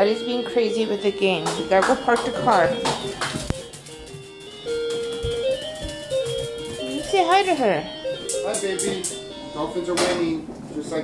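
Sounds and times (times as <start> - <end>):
simple electronic toy tune: 0.0 - 10.3.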